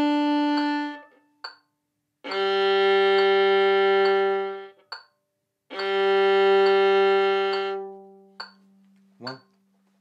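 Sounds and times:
violin long bowed note: 0:00.0 - 0:01.2, 0:02.2 - 0:04.8, 0:05.7 - 0:08.3
soft metronome tick: 0:00.0 - 0:10.0.

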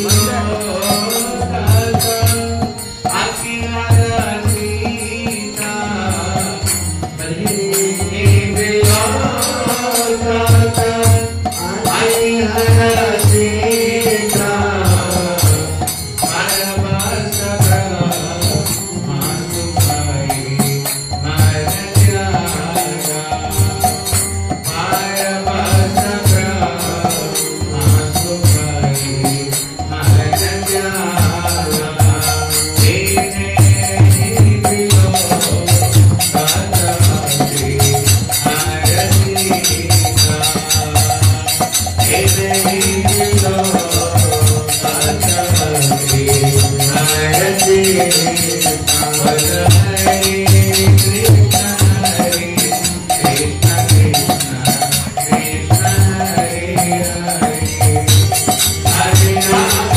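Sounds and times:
devotional chanting: 0:00.0 - 0:59.9
small hand cymbals: 0:00.0 - 0:59.9
drum beat: 0:19.7 - 0:59.9.

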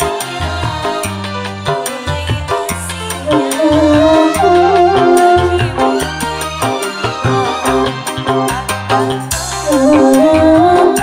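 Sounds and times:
keyboard melody: 0:00.0 - 0:11.0
deep bass line: 0:02.2 - 0:11.0
steady drum beat: 0:02.7 - 0:11.0
violin melody: 0:03.3 - 0:07.9
bamboo flute: 0:03.5 - 0:06.2.

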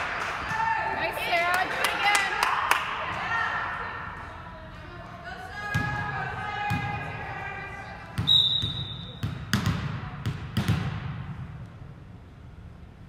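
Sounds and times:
referee whistle blast: 0:08.2 - 0:09.2.

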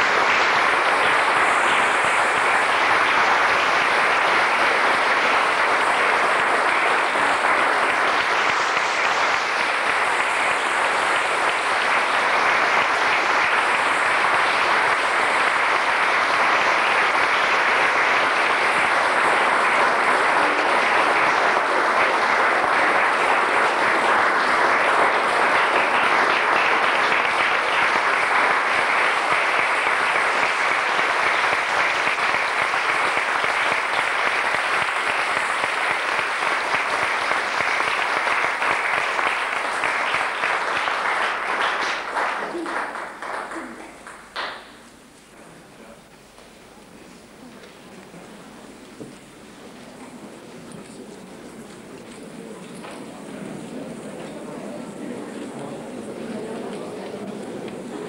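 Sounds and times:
audience applauding: 0:00.0 - 0:45.1.

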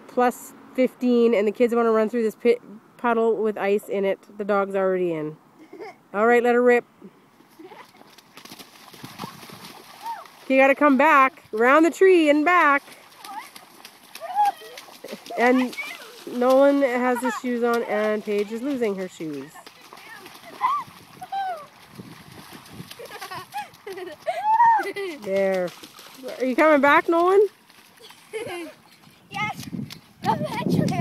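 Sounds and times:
feet splashing through puddle: 0:07.4 - 0:31.0
children shouting and squealing: 0:14.2 - 0:16.3, 0:19.4 - 0:21.8, 0:23.2 - 0:25.2.

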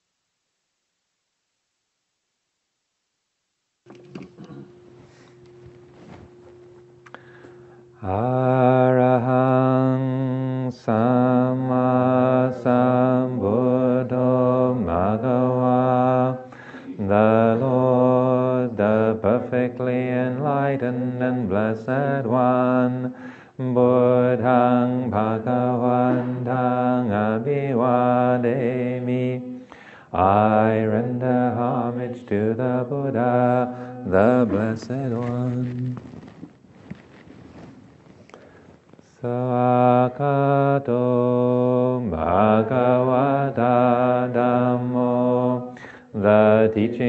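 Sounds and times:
devotional chanting: 0:04.0 - 0:36.4, 0:39.0 - 0:47.0.

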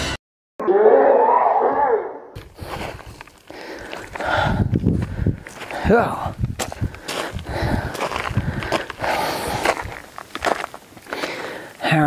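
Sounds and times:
footsteps crunching on rocky ground: 0:02.4 - 0:11.8.

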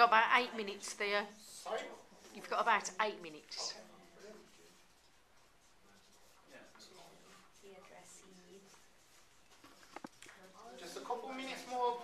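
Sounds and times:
pens scratching on paper: 0:00.0 - 0:12.0.

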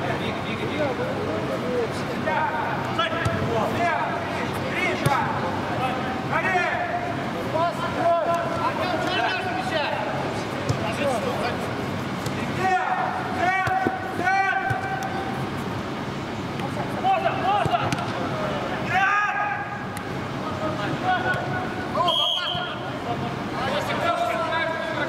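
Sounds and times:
noise of play: 0:00.0 - 0:25.0
players shouting: 0:02.3 - 0:11.7, 0:12.3 - 0:15.5, 0:16.9 - 0:25.0
ball being kicked: 0:13.6 - 0:14.0, 0:17.6 - 0:18.2.

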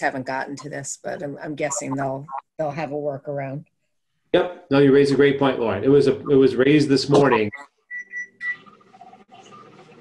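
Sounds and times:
short electronic beeps: 0:01.7 - 0:02.4.

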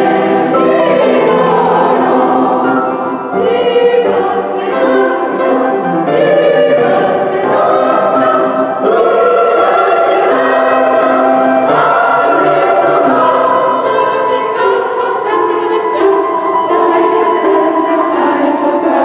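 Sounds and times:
mixed choir singing sustained chords: 0:00.0 - 0:19.0.

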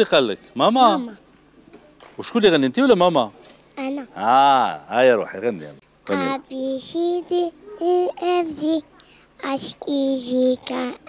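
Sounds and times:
girl singing unaccompanied: 0:06.0 - 0:11.0.

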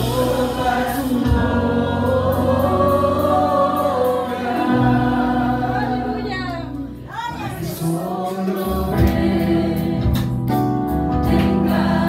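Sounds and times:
low backing music: 0:00.0 - 0:08.0
group singing worship song: 0:00.0 - 0:12.0.

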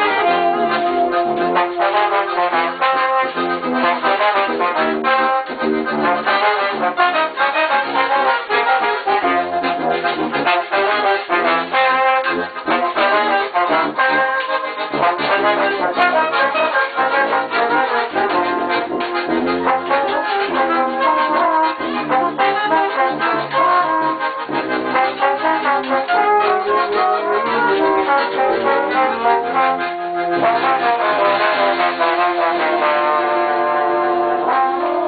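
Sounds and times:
piano accordion: 0:00.0 - 0:35.0
saxophone: 0:00.0 - 0:35.0
trombone: 0:00.0 - 0:35.0.

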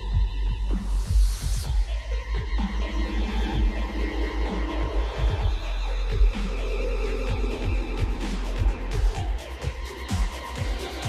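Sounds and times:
electronic music with deep bass: 0:00.0 - 0:11.0.

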